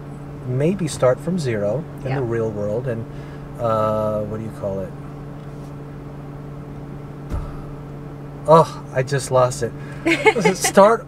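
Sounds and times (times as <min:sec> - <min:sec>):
low hum in car cabin: 0:00.0 - 0:11.0
soft thump: 0:07.3 - 0:07.8.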